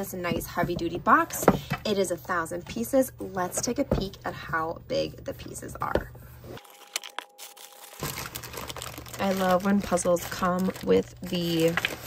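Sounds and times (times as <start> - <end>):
plastic bag crinkling: 6.6 - 12.0.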